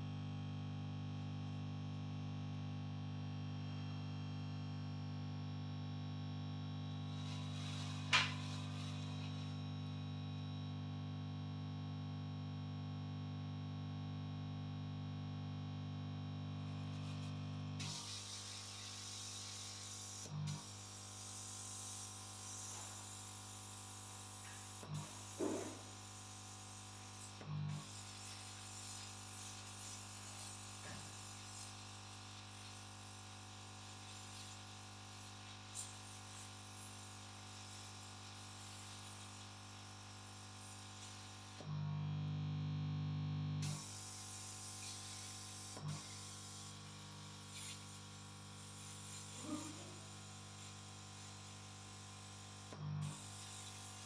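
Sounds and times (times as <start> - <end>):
air pump buzzing hum: 0.0 - 10.6, 15.3 - 54.0.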